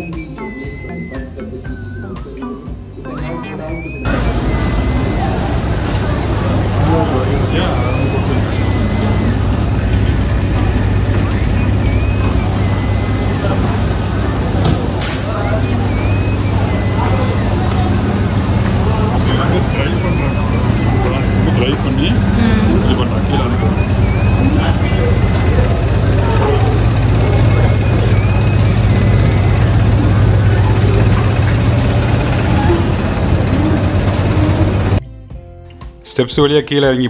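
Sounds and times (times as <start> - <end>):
machinery motor hum: 3.8 - 35.0
machinery clatter: 4.0 - 35.0.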